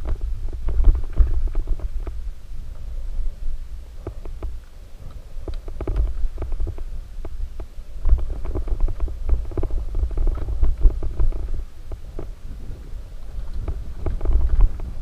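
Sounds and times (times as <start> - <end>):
bike rattling over rocks: 0.0 - 3.0, 4.0 - 15.0
bike tyres rumbling on dirt: 0.0 - 15.0.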